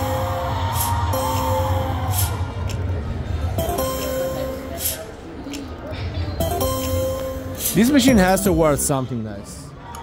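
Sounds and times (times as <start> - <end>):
slot machine electronic chord: 1.1 - 2.1, 3.6 - 5.0, 6.4 - 8.6
casino hubbub: 2.7 - 9.7.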